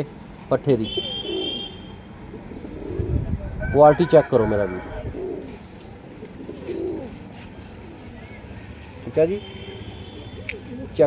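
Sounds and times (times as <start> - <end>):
pigeons cooing: 0.9 - 8.1, 9.8 - 11.0.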